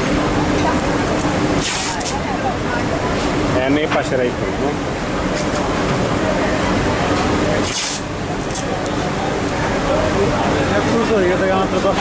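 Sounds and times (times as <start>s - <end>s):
machinery and ventilation hiss: 0.0s - 12.0s.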